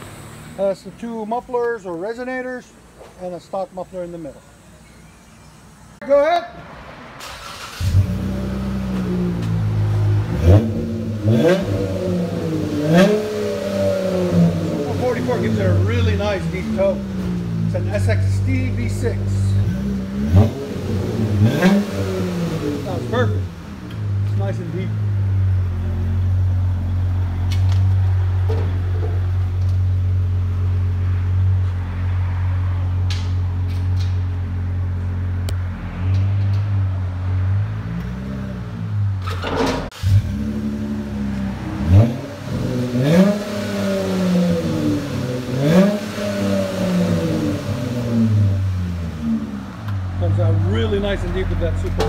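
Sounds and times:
car engine revving in blips: 7.2 - 52.0
car engine idling deeply: 40.0 - 52.0.

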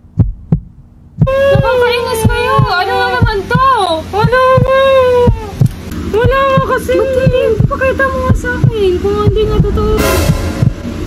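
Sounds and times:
heartbeat thumps: 0.0 - 11.0.

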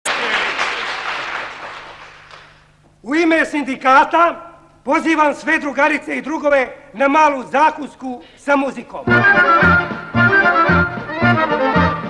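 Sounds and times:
people applauding: 0.0 - 2.7.

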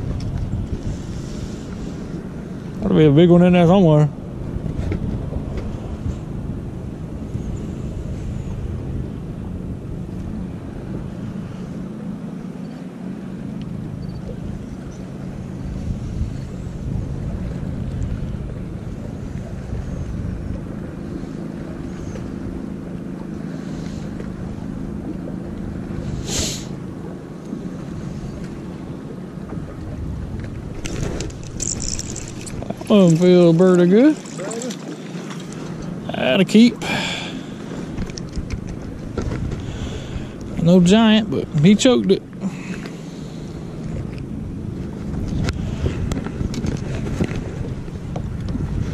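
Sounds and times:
low motor hum: 0.0 - 48.9
wind rumbling on microphone: 0.0 - 48.9.

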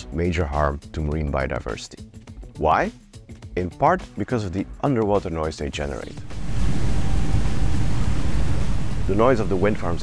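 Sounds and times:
underwater low rumble: 6.1 - 10.0.

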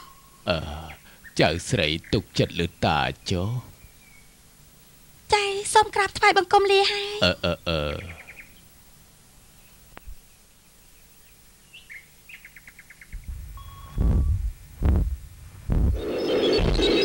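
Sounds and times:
faint bird chirps: 0.0 - 5.1, 7.4 - 8.8, 9.4 - 14.4, 16.0 - 17.0
heavy low thumps: 13.1 - 16.8.

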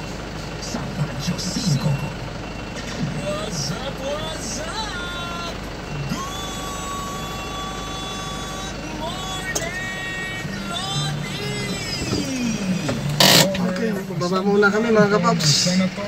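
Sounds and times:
van engine humming: 0.0 - 16.0
person singing slow melody: 3.4 - 13.4.

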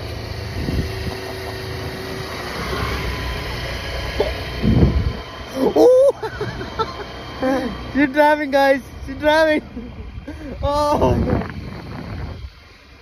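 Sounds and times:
motor scooter engine running: 0.0 - 13.0.

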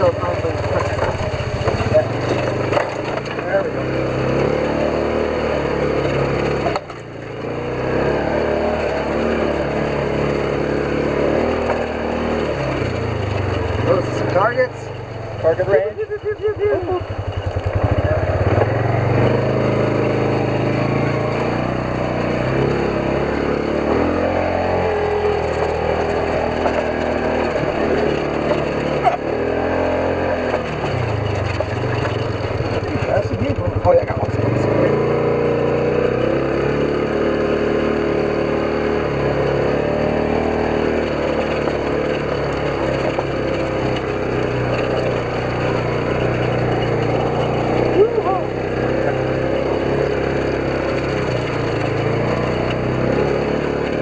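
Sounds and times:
engine revving: 0.0 - 54.0.

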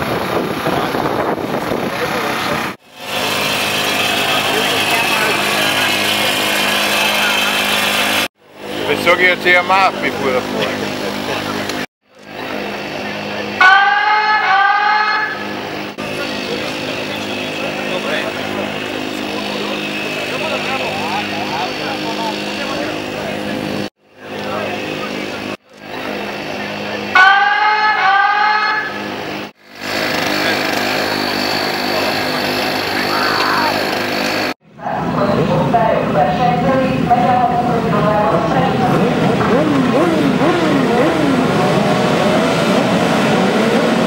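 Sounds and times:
motorcycle engines running: 0.0 - 44.0
people talking: 4.0 - 7.9, 8.8 - 13.6, 16.0 - 27.2, 30.3 - 34.0, 34.8 - 41.9.

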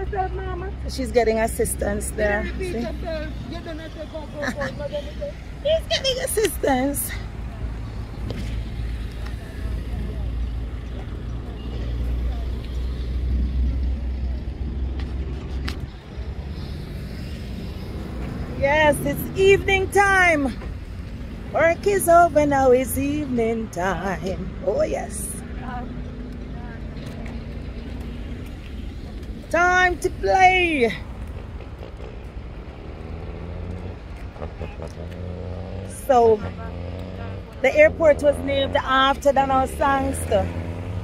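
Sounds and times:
cars passing: 0.0 - 41.0.

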